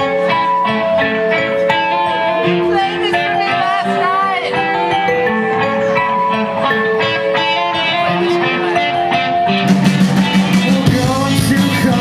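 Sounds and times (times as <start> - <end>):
wavering bending melody line: 0.0 - 10.9
live band playing: 0.0 - 12.0.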